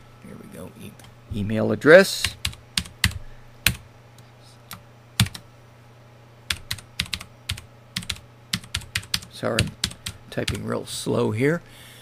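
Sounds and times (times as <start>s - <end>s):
steady low hum: 0.0s - 12.0s
computer keyboard typing: 2.2s - 3.8s, 5.2s - 5.4s, 6.5s - 10.6s.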